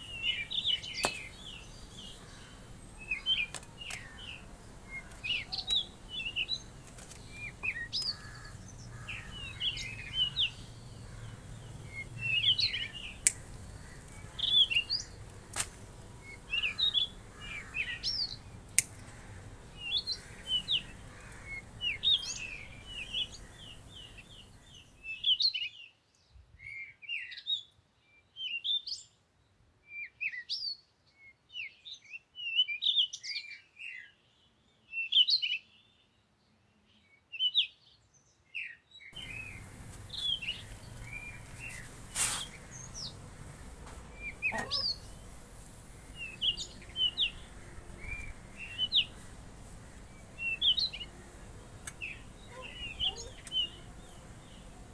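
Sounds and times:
small birds chirping: 0:00.0 - 0:29.2, 0:30.0 - 0:54.9
sharp clicks: 0:13.2 - 0:14.2, 0:18.7 - 0:19.2.

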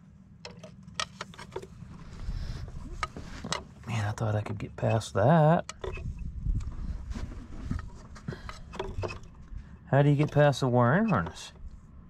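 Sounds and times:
low steady hum: 0:00.0 - 0:12.0
metal tools clicking and knocking: 0:05.6 - 0:06.1.

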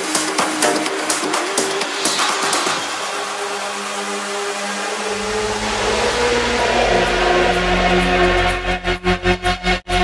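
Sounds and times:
held synth notes: 0:04.9 - 0:09.4
white-noise swell: 0:05.0 - 0:08.7
deep bass note: 0:05.1 - 0:09.1.

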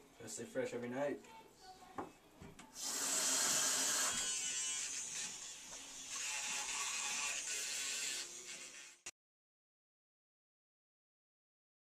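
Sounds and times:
electric toothbrush running: 0:02.8 - 0:09.1.

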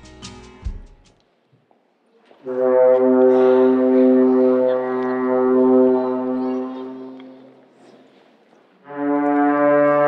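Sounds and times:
low horn-like wind instrument note: 0:02.5 - 0:07.4, 0:08.8 - 0:10.0.

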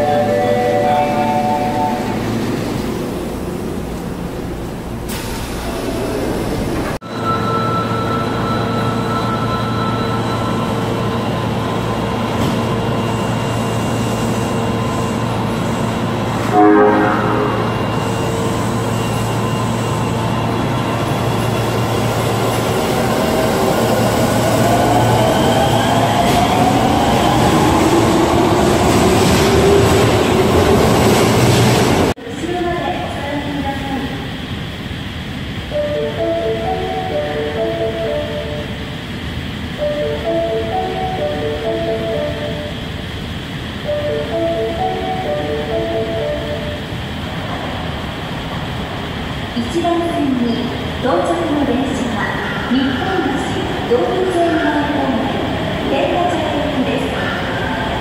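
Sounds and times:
subway trains running: 0:00.0 - 0:58.0.

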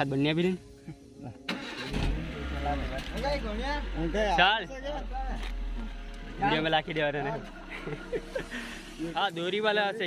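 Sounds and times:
van engine starting and idling: 0:01.5 - 0:09.2.

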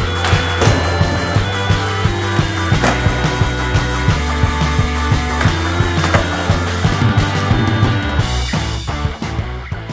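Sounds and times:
skateboard knocks: 0:00.0 - 0:07.2
skateboard rolling on smooth floor: 0:00.0 - 0:08.2
rock music with steady beat: 0:00.0 - 0:09.9.

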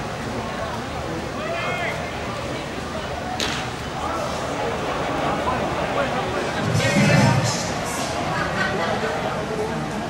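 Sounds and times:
crowd murmur: 0:00.0 - 0:10.0
bat cracking a baseball: 0:03.4 - 0:03.7.

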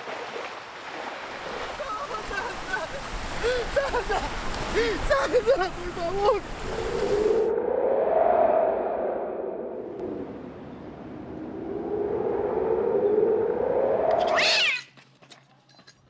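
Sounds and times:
fast rising sweep: 0:06.9 - 0:14.6
eerie wavering moaning tone: 0:07.3 - 0:14.4.

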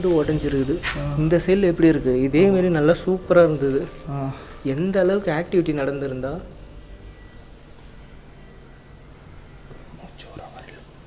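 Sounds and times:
faint whispering voice: 0:09.9 - 0:11.0.

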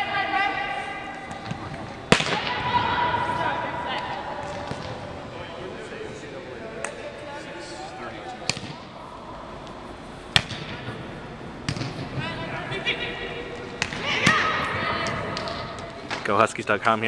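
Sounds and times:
players calling across court: 0:00.0 - 0:17.0
volleyballs smacking: 0:01.2 - 0:05.2, 0:08.4 - 0:09.0, 0:10.3 - 0:12.2, 0:13.5 - 0:16.3.

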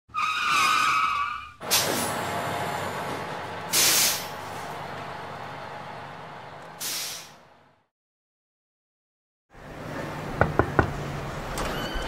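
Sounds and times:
wavering tyre screech: 0:00.1 - 0:01.7.

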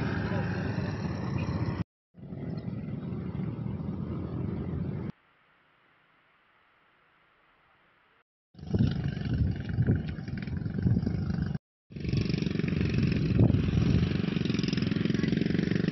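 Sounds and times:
motorcycle engine running: 0:08.6 - 0:15.9.

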